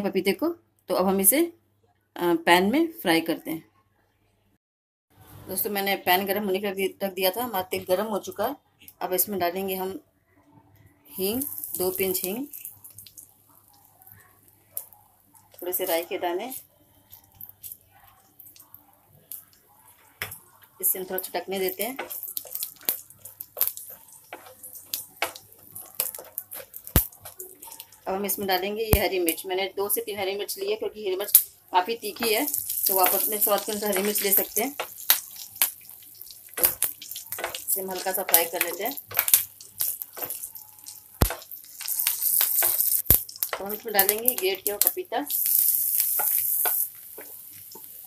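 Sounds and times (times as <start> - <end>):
mustard seeds spluttering in oil: 11.2 - 14.2, 20.3 - 29.4, 31.2 - 48.0
spatula stirring in pan: 11.5 - 28.6, 30.2 - 44.6, 45.3 - 48.0.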